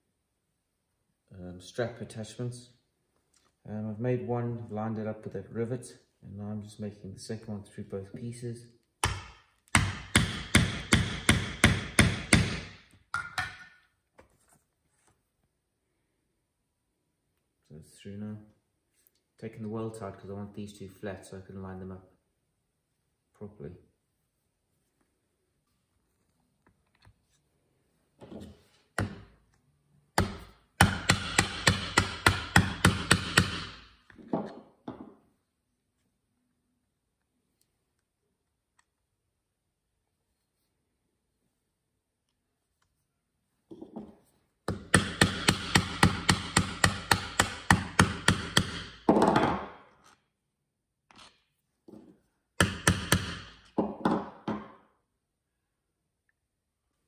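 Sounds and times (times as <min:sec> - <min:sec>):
mallet striking metal tool: 0:09.0 - 0:13.8, 0:30.2 - 0:33.8, 0:44.7 - 0:49.1.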